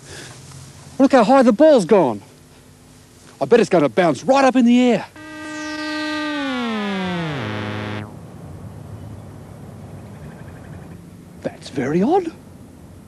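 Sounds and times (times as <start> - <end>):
synthesizer tone sliding down: 5.2 - 8.1.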